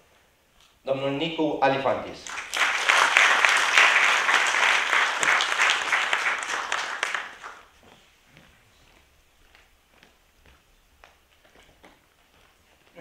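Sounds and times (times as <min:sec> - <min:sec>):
audience applauding: 0:02.2 - 0:07.7.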